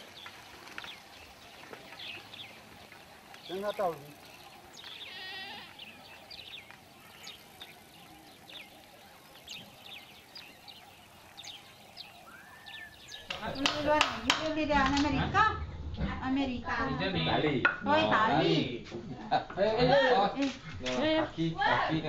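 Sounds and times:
faint outdoor ambience: 0.0s - 22.0s
voices: 0.0s - 22.0s
high bird chirps: 0.2s - 13.9s.

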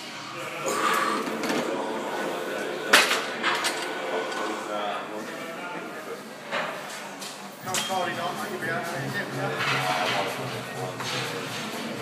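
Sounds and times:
voices in a large room: 0.0s - 12.0s.

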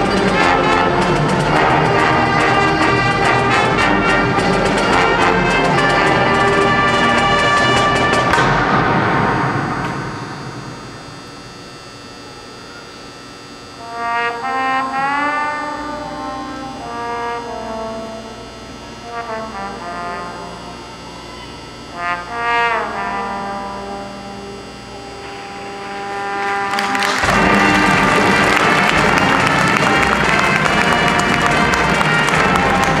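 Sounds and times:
marching band brass playing: 0.0s - 11.4s, 13.8s - 33.0s.

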